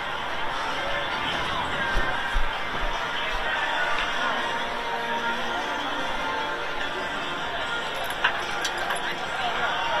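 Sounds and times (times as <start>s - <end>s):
crowd chatter: 0.0s - 10.0s
music over loudspeakers: 0.0s - 10.0s.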